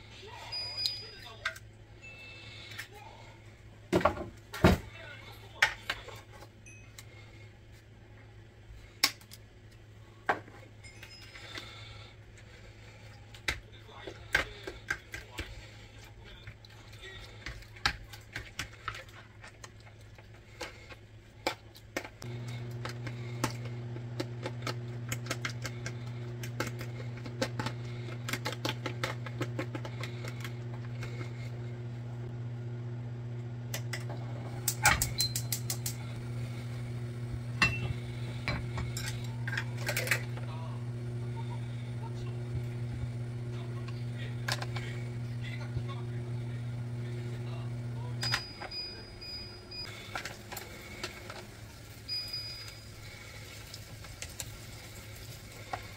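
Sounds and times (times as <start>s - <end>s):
steady low hum: 22.2s - 49.8s.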